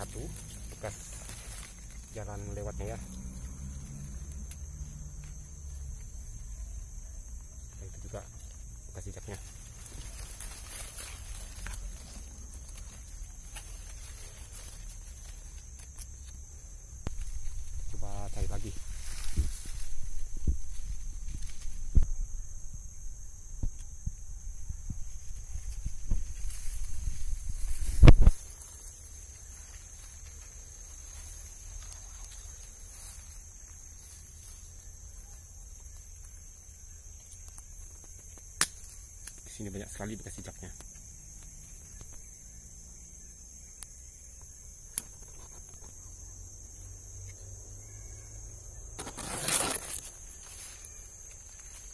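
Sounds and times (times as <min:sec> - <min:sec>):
footsteps in dry leaves: 0:00.0 - 0:04.4, 0:09.3 - 0:15.7, 0:17.1 - 0:21.9
insects buzzing: 0:00.0 - 0:51.9.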